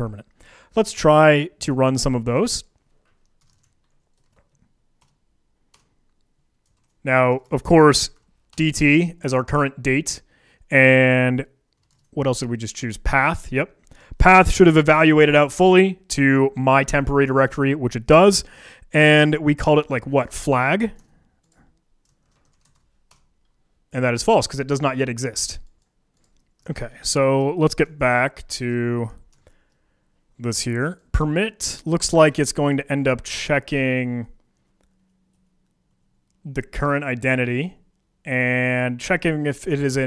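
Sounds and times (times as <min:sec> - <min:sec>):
faint keyboard keystrokes: 0:02.7 - 0:07.0, 0:11.7 - 0:12.1, 0:21.0 - 0:23.6.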